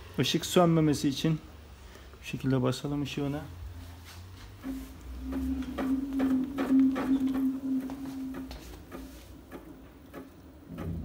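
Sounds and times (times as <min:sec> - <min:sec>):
alternator humming: 0:03.6 - 0:11.0
alternator clicks: 0:04.6 - 0:11.0.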